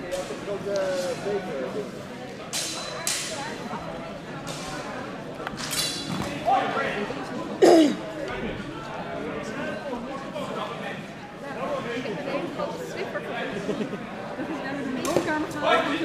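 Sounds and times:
voices echoing in a hall: 0.0s - 16.0s
training swords clashing: 2.5s - 3.4s.

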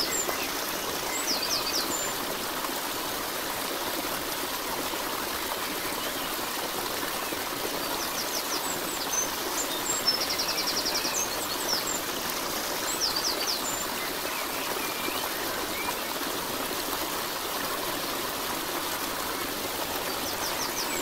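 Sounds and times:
flowing water: 0.0s - 21.0s.

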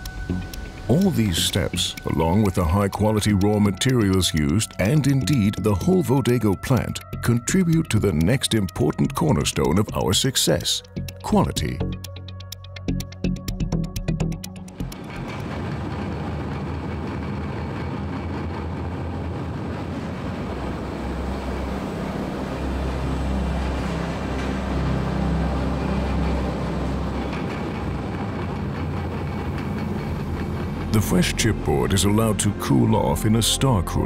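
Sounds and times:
industrial machinery rumbling: 0.0s - 34.0s.

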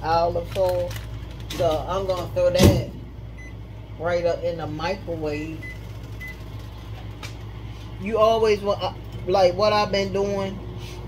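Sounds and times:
steady low hum: 0.0s - 11.0s
microwave keypad beep: 3.4s - 3.6s, 5.5s - 6.4s.

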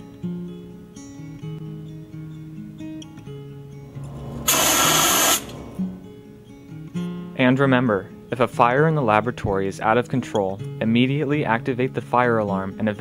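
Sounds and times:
acoustic guitar music: 0.0s - 13.0s
fire extinguisher hissing burst: 4.0s - 5.9s.

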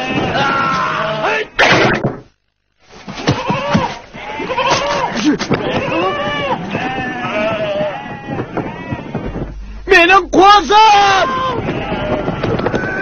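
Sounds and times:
sheep and goats bleating: 0.0s - 1.4s, 3.2s - 9.7s, 10.9s - 13.0s.

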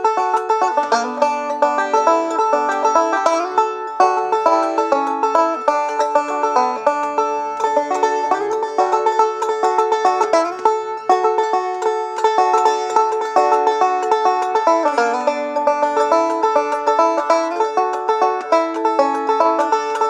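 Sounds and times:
banjo picking fast: 0.0s - 20.0s.

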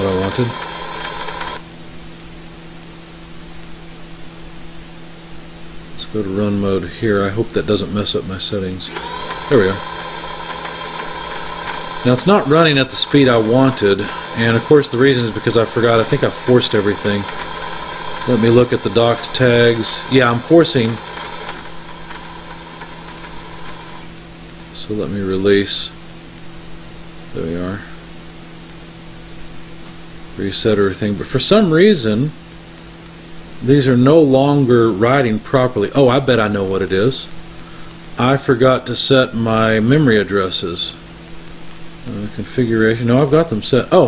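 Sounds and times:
conveyor machine sound: 0.0s - 1.6s, 6.1s - 25.9s
faint hiss: 0.0s - 44.0s
low electrical hum: 0.0s - 44.0s.

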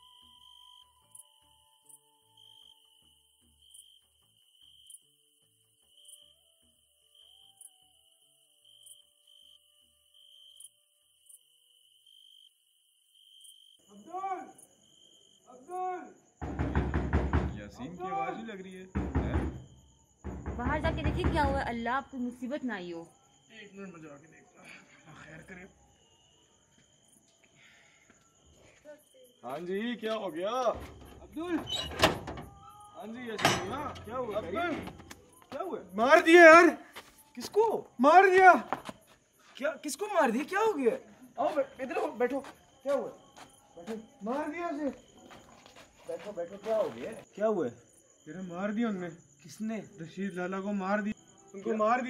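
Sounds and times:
rapid knocking on a door: 16.4s - 17.7s, 18.9s - 21.8s
metal gate latch clack: 33.3s - 34.4s.

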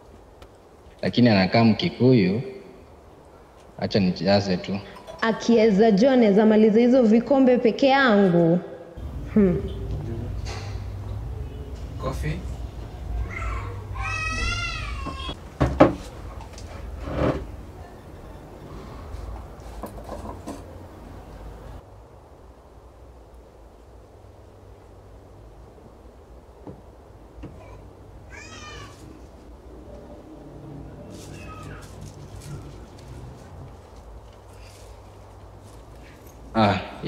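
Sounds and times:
low steady hum: 0.0s - 37.0s
cat meowing: 13.2s - 15.4s, 27.6s - 29.2s, 31.1s - 32.7s
sharp knocks: 15.0s - 16.1s.

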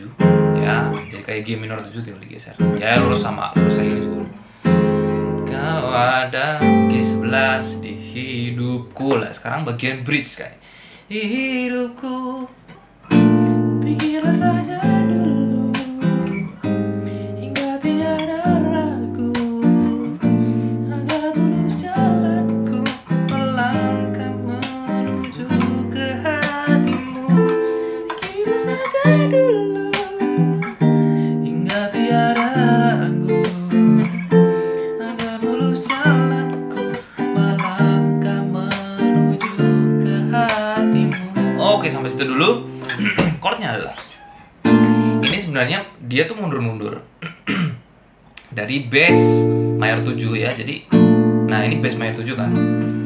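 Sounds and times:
nylon-string guitar chords: 0.0s - 1.9s, 2.5s - 9.4s, 13.0s - 44.0s, 44.6s - 45.6s, 48.8s - 53.0s.

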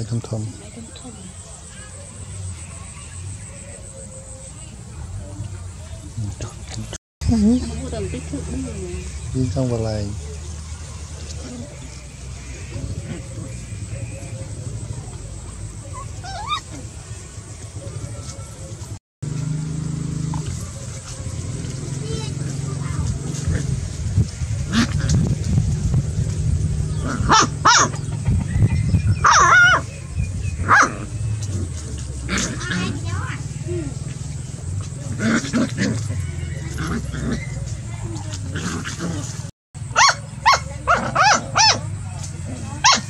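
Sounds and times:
puppies growling and yelping: 11.2s - 17.1s, 24.6s - 25.4s, 26.9s - 43.0s.

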